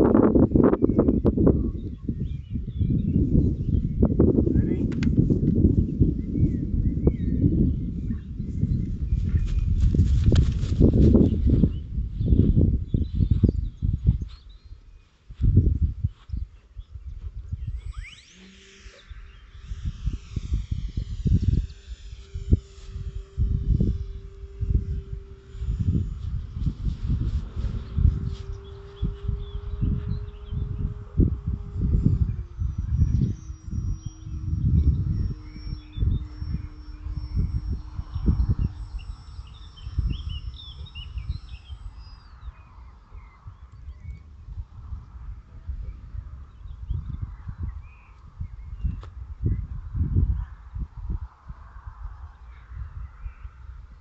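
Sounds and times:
wind buffeting microphone: 0:00.0 - 0:54.0
distant propeller motor drone: 0:16.6 - 0:54.0.

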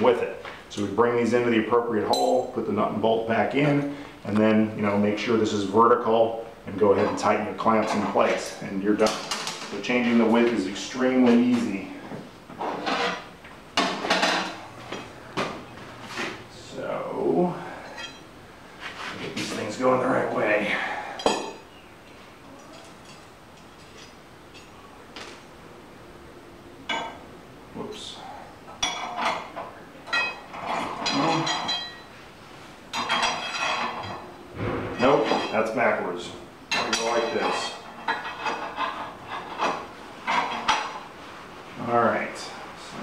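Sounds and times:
metal hardware clinking: 0:02.1 - 0:02.6, 0:17.9 - 0:18.3, 0:28.8 - 0:32.1.

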